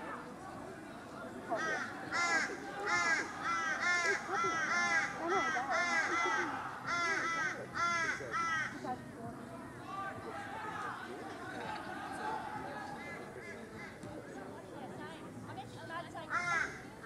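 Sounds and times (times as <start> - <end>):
crow cawing: 1.5 - 8.8, 16.3 - 16.9.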